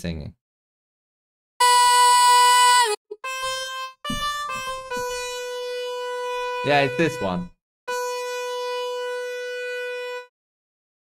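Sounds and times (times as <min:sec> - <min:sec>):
electronic keyboard note: 0:01.6 - 0:10.3.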